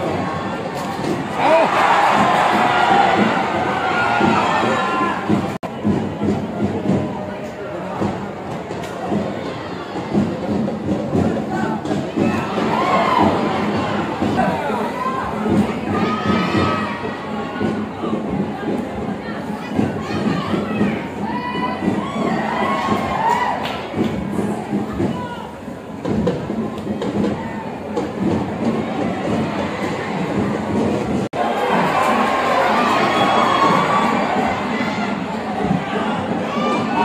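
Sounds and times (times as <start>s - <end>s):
stadium crowd shouting and cheering: 0.0s - 37.0s.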